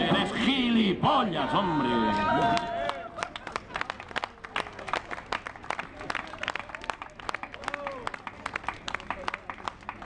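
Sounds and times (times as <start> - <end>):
small crowd applauding: 1.8 - 10.0.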